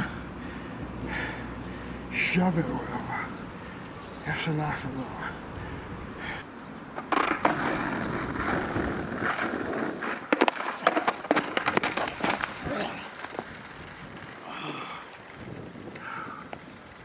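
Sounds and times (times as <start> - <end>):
skateboard wheels rumbling on asphalt: 0.0 - 17.0
skateboard deck clattering: 6.9 - 14.4.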